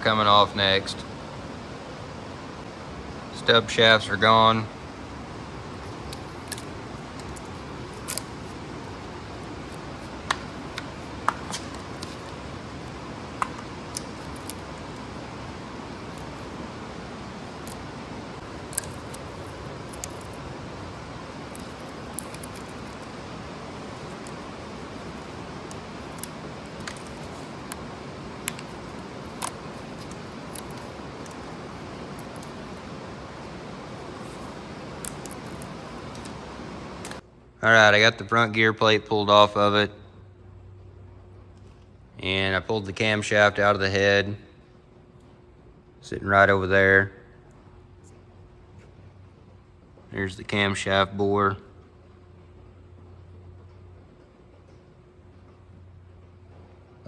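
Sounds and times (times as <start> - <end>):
steady low hiss: 0.0 - 57.0.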